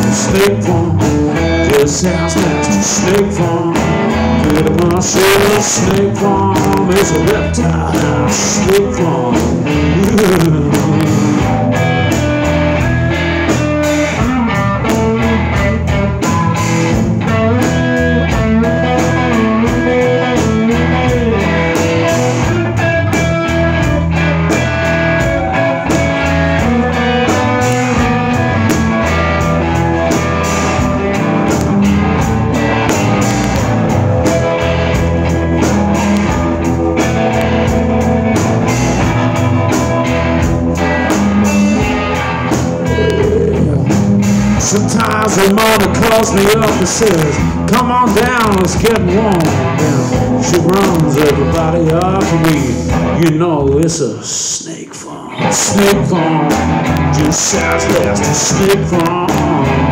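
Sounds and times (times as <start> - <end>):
electric guitar gliding notes: 0.0 - 54.0, 55.3 - 59.9
steady drum beat: 0.0 - 54.8, 55.4 - 59.9
bass line: 0.0 - 59.9.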